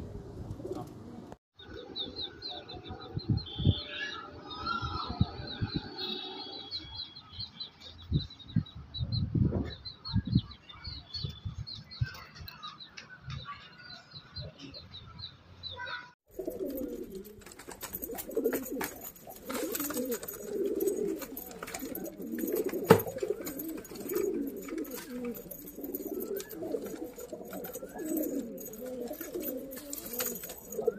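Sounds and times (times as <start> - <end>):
pigeons cooing: 16.3 - 30.9.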